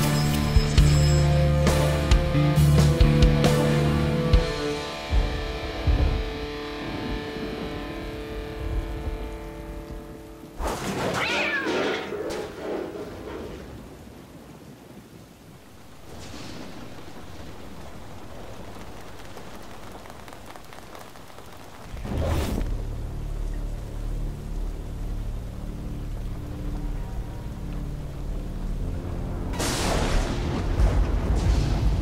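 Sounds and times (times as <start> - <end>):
steady rain: 0.0 - 32.0
cat yowling: 11.1 - 12.1.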